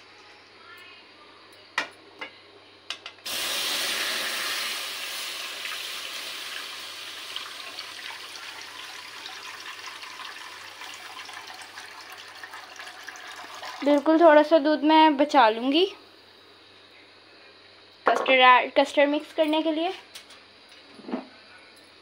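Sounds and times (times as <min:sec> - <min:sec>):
milk pouring into a metal pan: 0:03.3 - 0:14.1.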